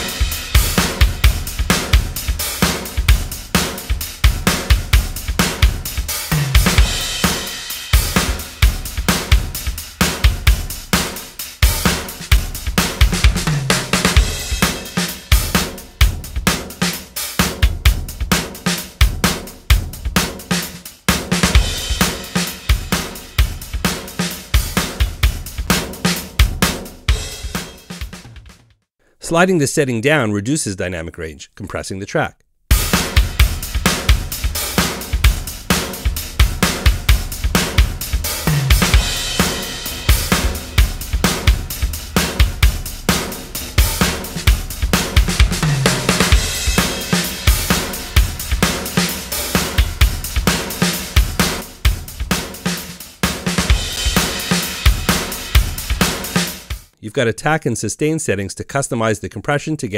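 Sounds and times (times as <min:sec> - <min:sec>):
drum kit groove: 0:00.0 - 0:29.8, 0:32.7 - 0:57.0.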